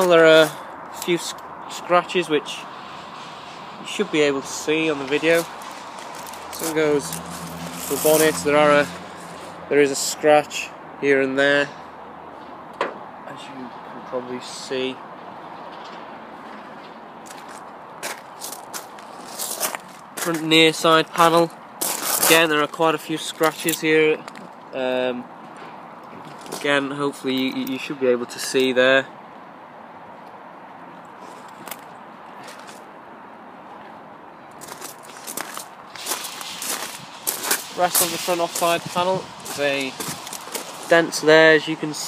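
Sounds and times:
footsteps on gravel: 0:05.0 - 0:09.6, 0:17.2 - 0:24.4, 0:31.2 - 0:32.9, 0:34.6 - 0:41.3
steady background hiss: 0:34.7 - 0:42.0.

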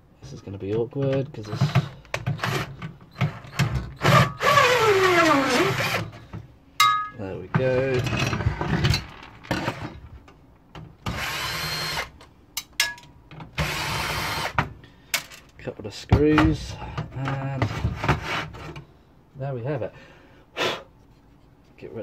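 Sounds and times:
cordless drill motor whining: 0:03.4 - 0:06.1, 0:11.1 - 0:12.1, 0:13.6 - 0:14.6.

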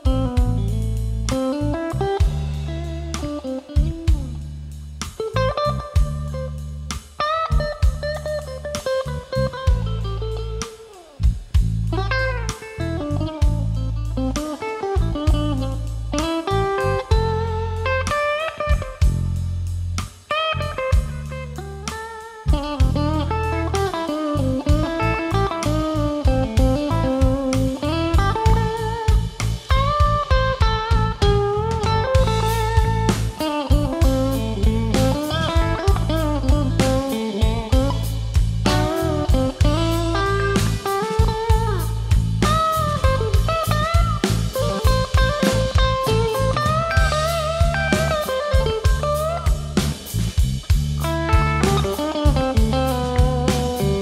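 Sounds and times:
electric guitar lead with bent notes: 0:00.0 - 0:04.4, 0:11.9 - 0:19.6, 0:20.2 - 0:50.3, 0:51.0 - 0:54.0
live blues band playing: 0:00.0 - 0:54.0.

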